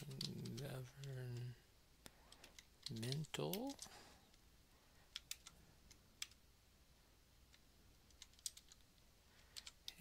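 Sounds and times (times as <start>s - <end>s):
keyboard keys clicking: 5.1s - 6.4s, 8.1s - 8.8s.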